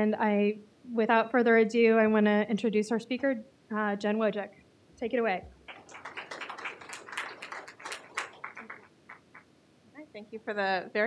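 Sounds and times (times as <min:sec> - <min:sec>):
small audience applause: 0:05.6 - 0:09.5.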